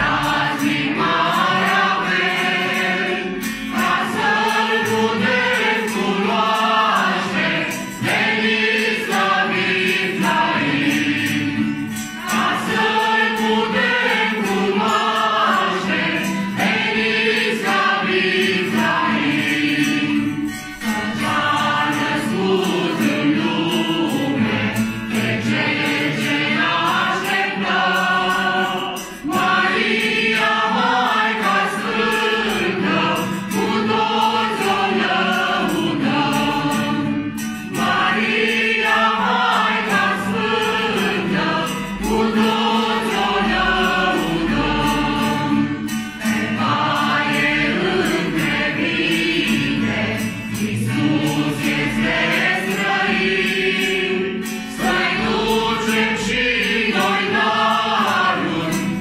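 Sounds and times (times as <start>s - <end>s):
group of men and women singing: 0.0s - 59.0s
strummed acoustic guitar: 0.0s - 59.0s.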